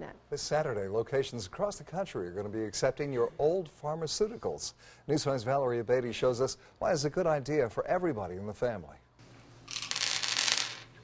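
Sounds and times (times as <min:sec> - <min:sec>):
tablets spilling onto a tabletop: 0:09.6 - 0:11.0.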